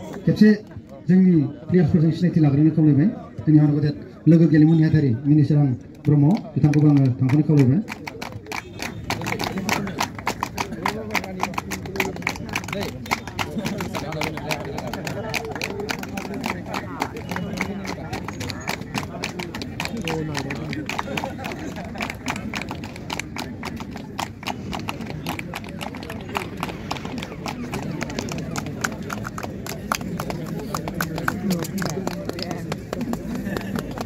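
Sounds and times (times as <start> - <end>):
crowd chatter: 0.0 - 34.0
quick hand clapping: 5.9 - 23.5, 25.3 - 34.0.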